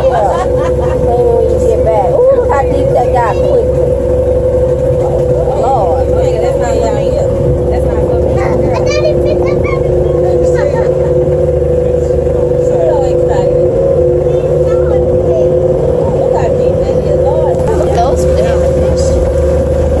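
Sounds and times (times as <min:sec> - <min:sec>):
boat motor droning: 0:00.0 - 0:20.0
faint voices: 0:00.0 - 0:20.0.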